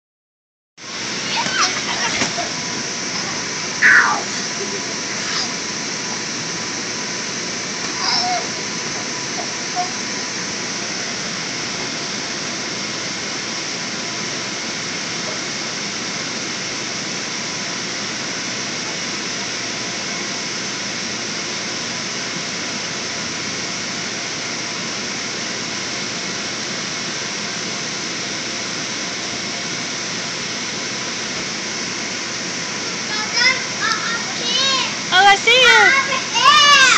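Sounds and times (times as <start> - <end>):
electric blower fan rushing: 0.8 - 36.9.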